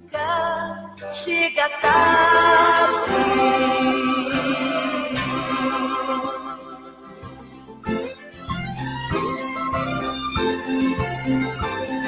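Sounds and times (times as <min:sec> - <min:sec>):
voices singing in harmony: 0:01.6 - 0:07.0.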